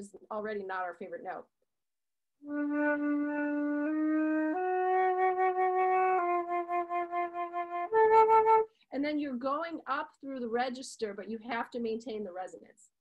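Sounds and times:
solo flute playing: 0:02.4 - 0:08.7.

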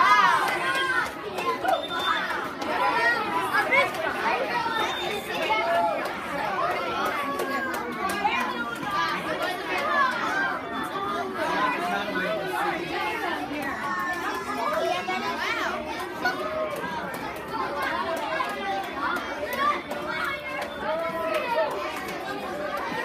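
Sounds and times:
children's voices chattering: 0:00.0 - 0:23.0.

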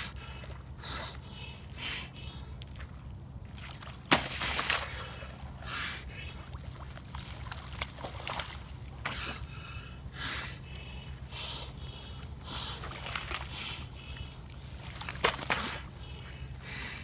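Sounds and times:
water sloshing: 0:00.0 - 0:16.9.

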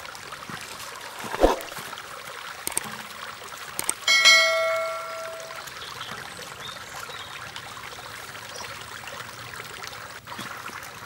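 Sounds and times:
running water: 0:00.0 - 0:11.0.

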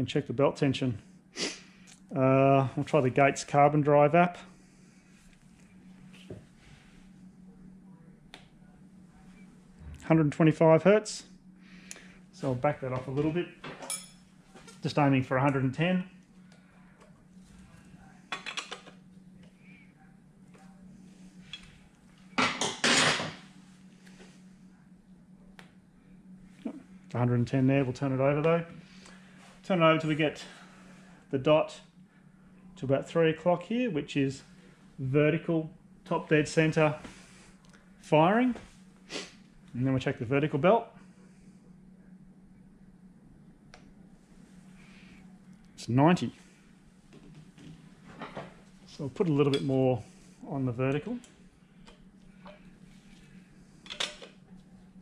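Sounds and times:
faint steady hum: 0:00.0 - 0:55.0
metal tools clinking and scraping: 0:13.6 - 0:14.8.

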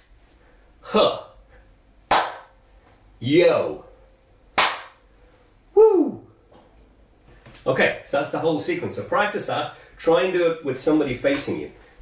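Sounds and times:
sharp hand clap: 0:02.1 - 0:02.6, 0:04.6 - 0:05.0
person shouting woo: 0:05.8 - 0:06.3.

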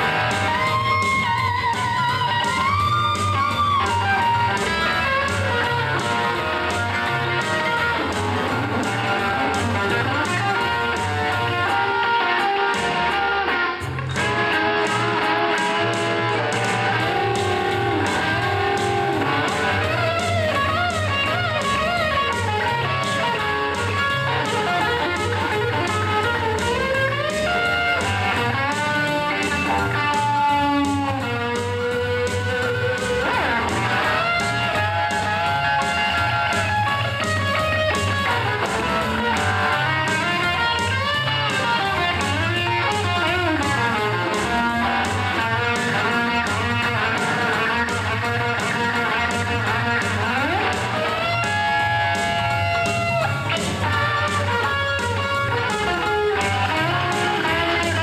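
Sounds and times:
electric guitar playing: 0:00.0 - 0:58.0.

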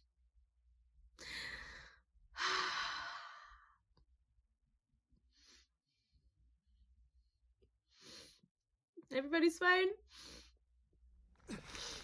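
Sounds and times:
woman breathing in: 0:01.2 - 0:03.7.

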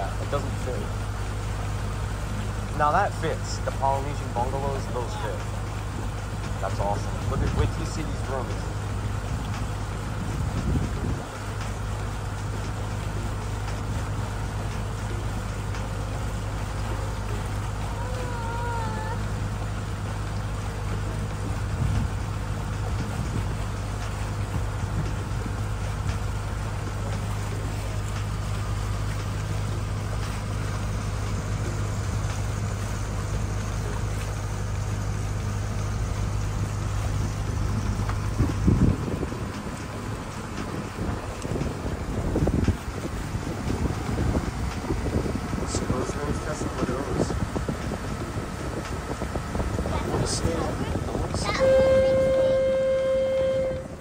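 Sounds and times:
boat engine droning: 0:00.0 - 0:54.0
water noise: 0:00.0 - 0:54.0
wind noise: 0:10.1 - 0:11.5, 0:21.4 - 0:23.8, 0:36.8 - 0:54.0
short wavering tone: 0:51.5 - 0:54.0.

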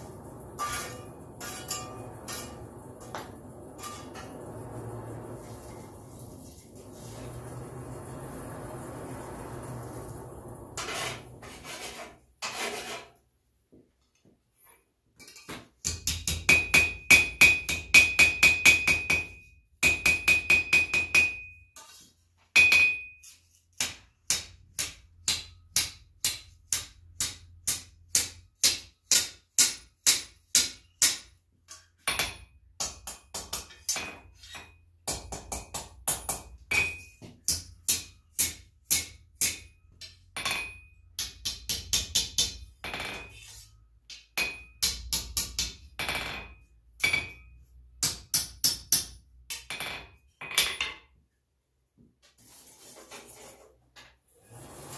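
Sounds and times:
hammer ringing on anvil: 0:15.9 - 0:21.7, 0:22.6 - 0:23.2, 0:44.4 - 0:49.1.

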